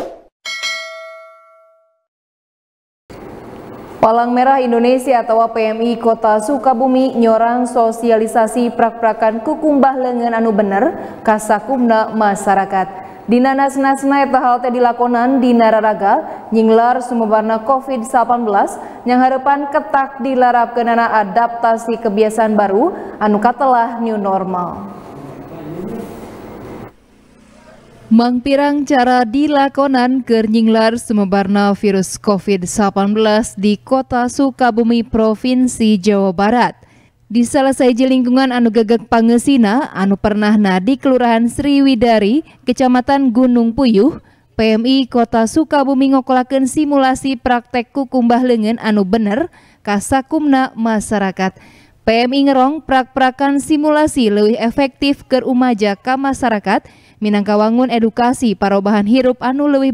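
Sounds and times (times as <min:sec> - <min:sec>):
bright bell ding: 0:00.5 - 0:02.1
microphone hiss: 0:23.0 - 0:28.2.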